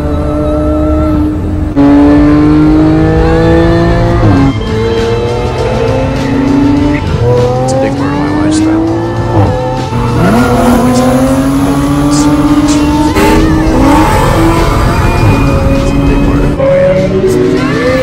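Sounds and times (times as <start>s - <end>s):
car engine accelerating with upshifts: 0.0s - 18.0s.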